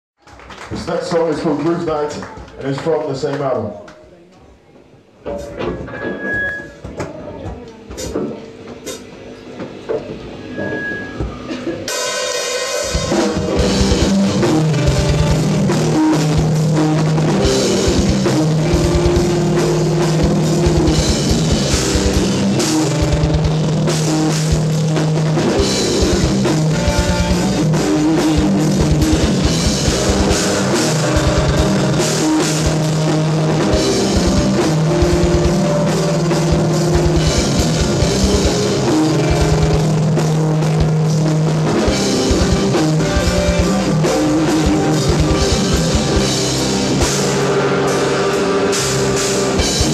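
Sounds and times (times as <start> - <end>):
metal band playing loud: 10.7 - 49.9
fast bass drum strokes: 12.6 - 49.9.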